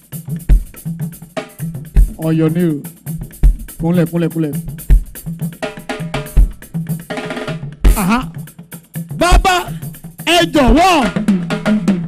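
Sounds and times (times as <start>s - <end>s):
percussion-led live band music: 0.0s - 12.0s
heavy bass drum hit: 3.3s - 6.9s, 7.6s - 8.4s, 9.2s - 12.0s.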